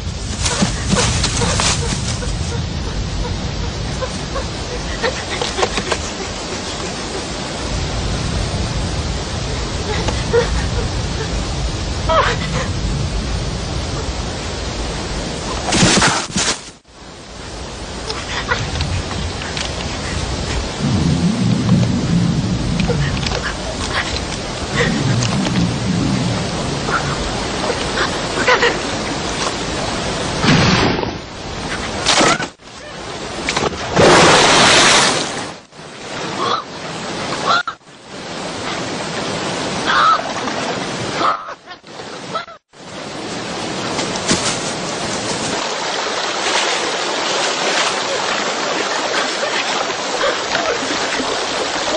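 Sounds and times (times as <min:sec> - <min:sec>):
steady rushing background: 0:00.0 - 0:32.2.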